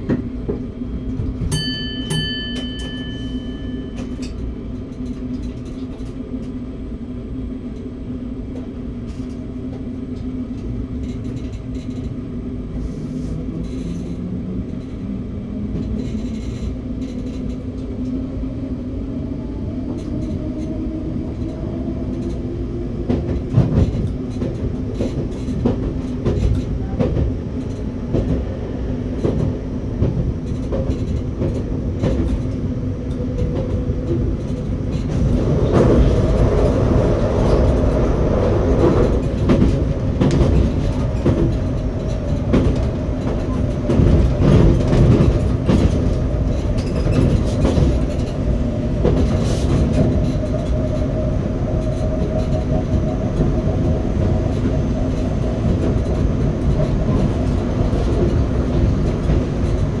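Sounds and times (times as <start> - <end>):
train motor hum: 0.0 - 60.0
train rolling noise: 0.0 - 60.0.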